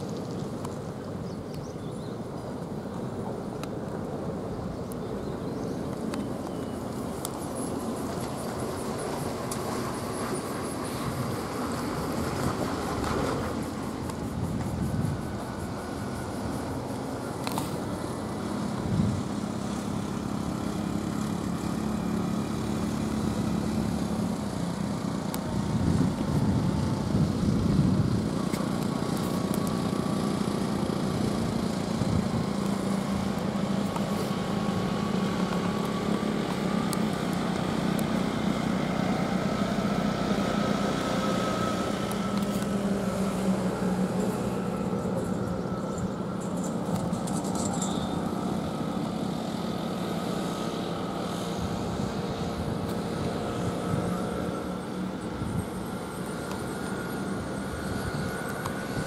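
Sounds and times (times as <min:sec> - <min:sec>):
truck engines droning: 0:00.0 - 0:59.0.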